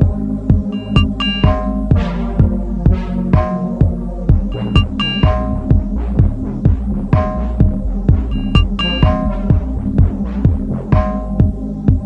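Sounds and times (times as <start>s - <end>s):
deep kick drum: 0.0s - 12.0s
electronic music: 0.0s - 12.0s.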